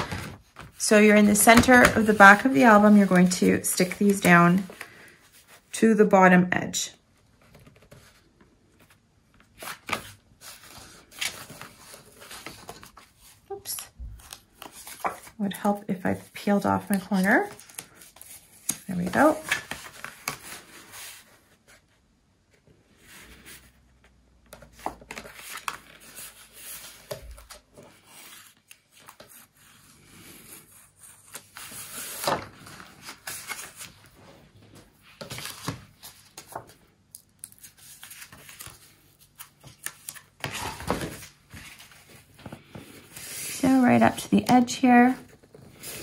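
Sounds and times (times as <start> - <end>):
cardstock rustling and folding: 0.0 - 5.7, 7.3 - 22.0, 23.0 - 46.0.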